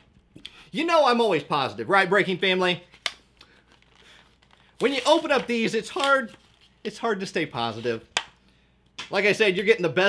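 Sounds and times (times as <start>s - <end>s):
plastic pack crinkling: 3.4s - 6.9s.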